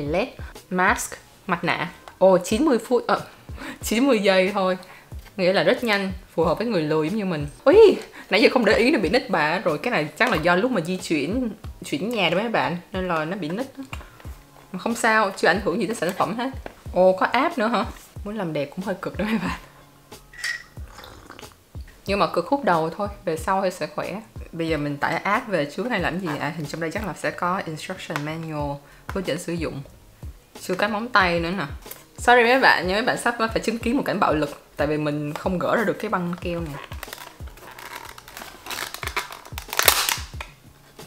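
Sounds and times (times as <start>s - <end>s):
slurping sip from a mug: 20.8s - 21.6s
plastic box crinkling and clicking: 36.6s - 40.5s
sharp plastic cracks: 36.8s - 40.6s.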